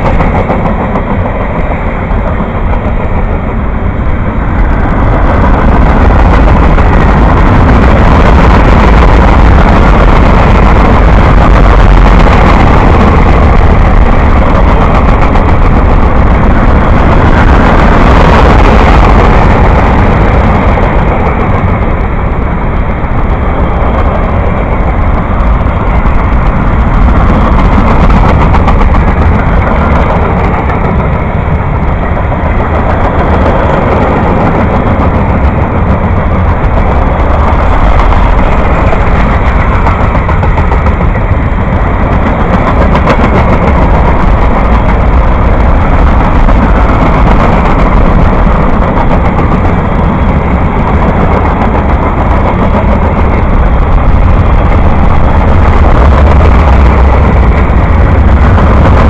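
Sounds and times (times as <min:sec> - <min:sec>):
freight train wheels rumbling: 0:00.0 - 0:59.0.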